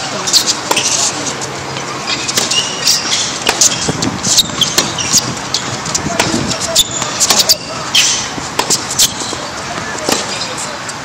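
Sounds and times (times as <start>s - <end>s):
sneakers squeaking: 0.0s - 11.0s
racket striking tennis ball: 0.3s - 1.4s, 2.0s - 10.5s
ball bouncing on court: 2.3s - 10.4s.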